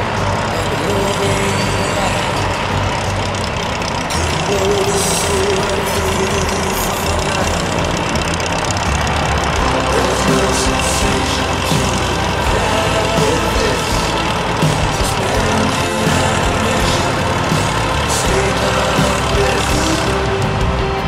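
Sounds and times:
propeller plane engine drone: 0:00.0 - 0:21.0.

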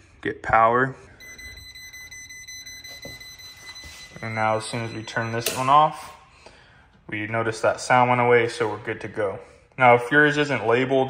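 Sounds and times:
voltage tester beeping: 0:01.2 - 0:06.2.

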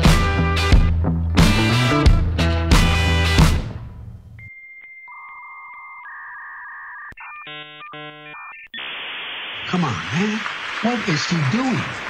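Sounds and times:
rock music: 0:00.0 - 0:04.4
steady electronic beeps: 0:04.4 - 0:09.7.

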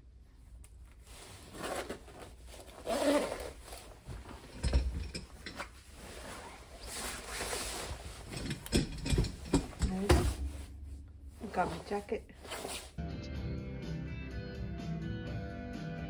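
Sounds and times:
jacket fabric rustling: 0:00.8 - 0:13.0
zipper being pulled: 0:01.2 - 0:04.0, 0:06.0 - 0:08.3, 0:11.5 - 0:13.0.

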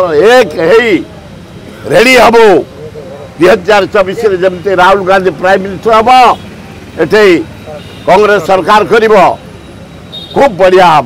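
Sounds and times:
man speaking: 0:00.0 - 0:01.1, 0:01.8 - 0:06.4, 0:07.0 - 0:09.4, 0:10.4 - 0:11.0
steady background noise: 0:00.0 - 0:11.0.

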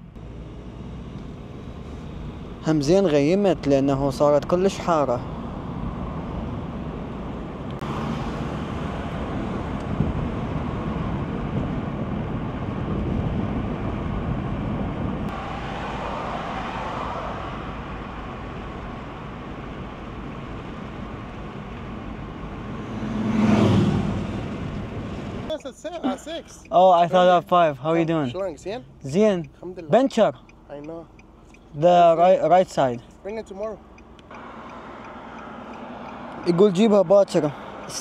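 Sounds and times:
road and engine noise inside car: 0:00.0 - 0:38.0
rushing swell: 0:15.3 - 0:19.5.

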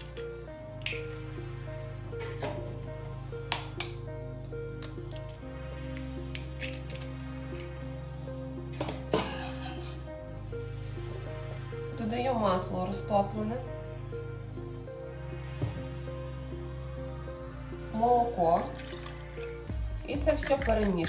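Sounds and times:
background music held notes: 0:00.0 - 0:21.0.

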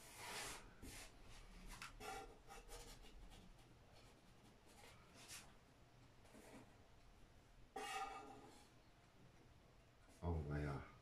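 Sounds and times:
knife scraping dough on board: 0:07.8 - 0:08.7.

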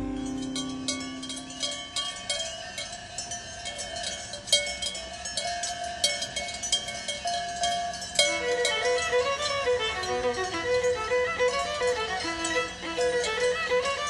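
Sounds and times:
guitar chord: 0:00.0 - 0:02.0
cowbells clanking: 0:00.0 - 0:14.0.

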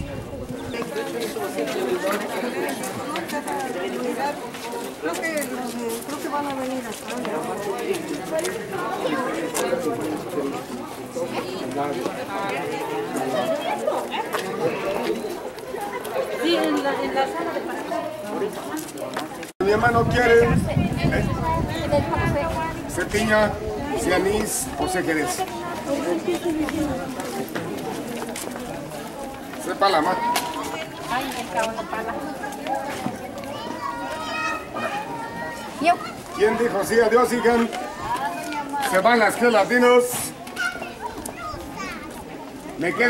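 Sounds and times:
children's voices: 0:00.0 - 0:19.5, 0:20.6 - 0:22.9, 0:23.5 - 0:39.0, 0:40.2 - 0:43.0
crowd chatter: 0:00.0 - 0:43.0.

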